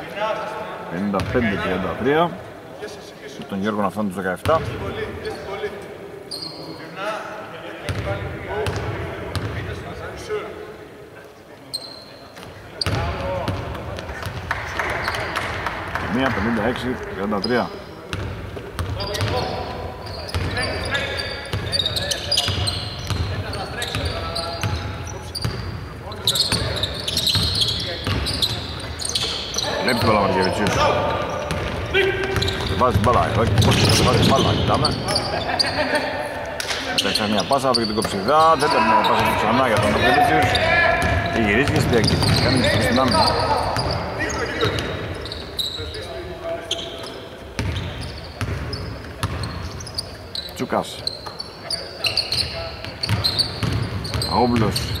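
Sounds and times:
players calling out: 0:18.8 - 0:55.0.

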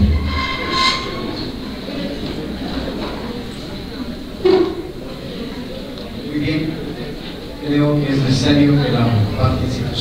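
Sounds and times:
short squeal: 0:00.0 - 0:02.2
low bump: 0:00.0 - 0:02.3
low rumbling room noise: 0:00.0 - 0:10.0.

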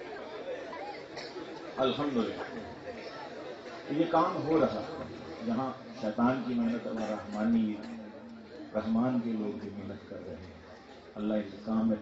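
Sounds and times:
murmur of voices: 0:00.0 - 0:12.0
man speaking through microphone: 0:01.7 - 0:02.8, 0:03.8 - 0:12.0.

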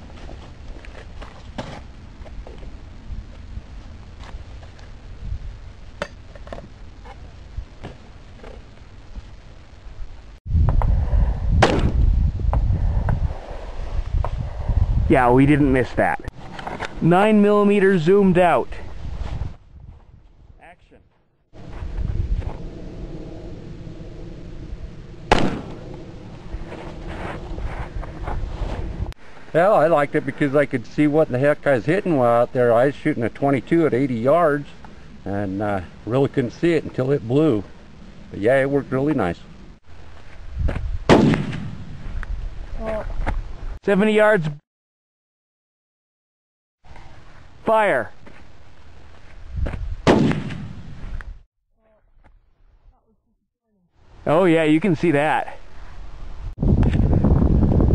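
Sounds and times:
low steady hum: 0:21.6 - 0:41.1
faint sharp crack: 0:25.3 - 0:25.8, 0:41.1 - 0:41.8, 0:49.7 - 0:50.8
pistol shot with echo: 0:25.3 - 0:25.8, 0:41.1 - 0:41.8, 0:50.1 - 0:50.8.

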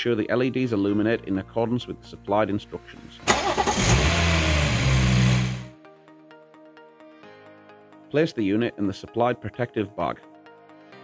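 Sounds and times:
background music: 0:00.0 - 0:11.0
car engine starting and idling: 0:03.3 - 0:05.7.

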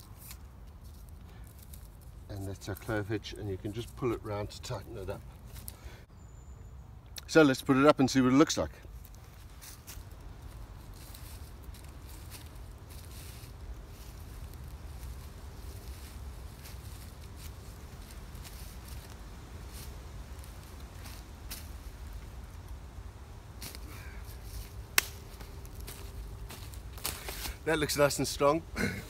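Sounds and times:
footsteps in dry leaves: 0:00.0 - 0:05.9, 0:08.8 - 0:28.5.

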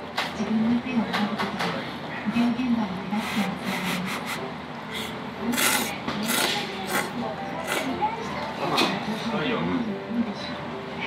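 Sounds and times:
person slurping noodles: 0:03.9 - 0:07.9.

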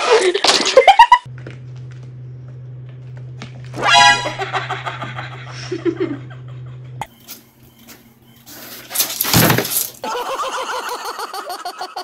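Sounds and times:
loud crash of things falling: 0:09.0 - 0:10.0.

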